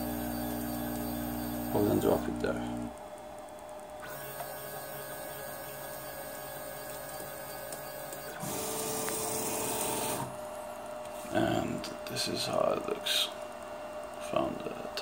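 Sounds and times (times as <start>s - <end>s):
printer motors running: 0.0s - 2.9s, 3.9s - 10.5s
hissy machine noise: 4.0s - 15.0s.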